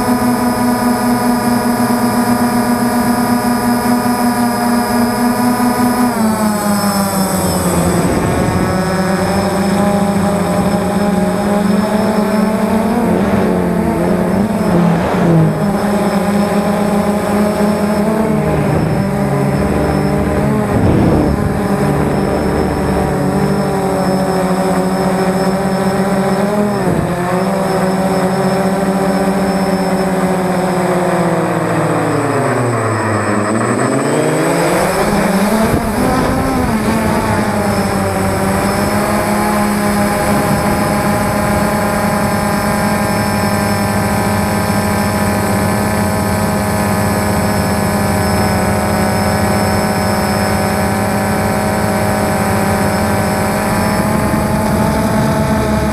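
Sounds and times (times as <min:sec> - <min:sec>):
drone motors and propellers whining: 0:00.0 - 0:55.9.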